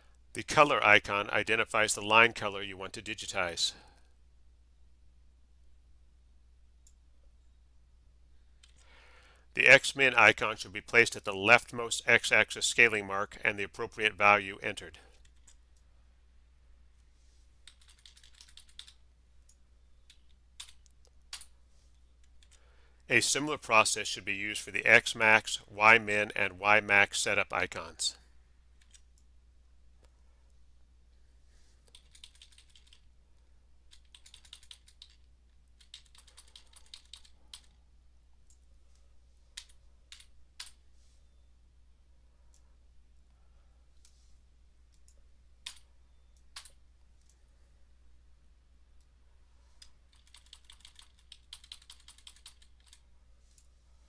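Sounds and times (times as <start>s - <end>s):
low steady hum: 0.0s - 54.0s
computer keyboard keystrokes: 17.6s - 21.5s, 31.9s - 33.0s, 33.9s - 37.7s, 45.0s - 45.8s, 49.8s - 53.0s
keyboard keystrokes: 17.7s - 19.0s, 49.8s - 53.0s.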